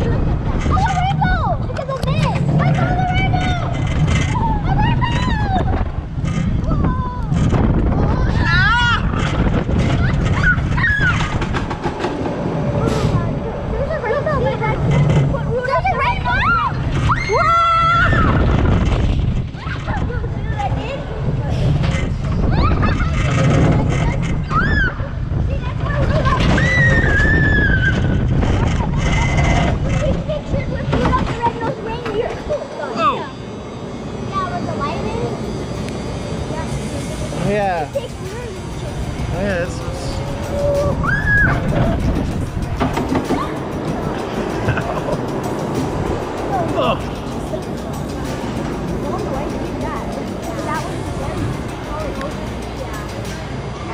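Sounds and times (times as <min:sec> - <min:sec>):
roller coaster rumble and rattle: 0:00.0 - 0:53.9
children squealing: 0:08.0 - 0:11.5, 0:16.0 - 0:18.5, 0:22.5 - 0:23.4, 0:24.4 - 0:25.2, 0:26.2 - 0:29.3, 0:40.2 - 0:42.0
high squeal: 0:26.5 - 0:28.4, 0:31.9 - 0:42.6.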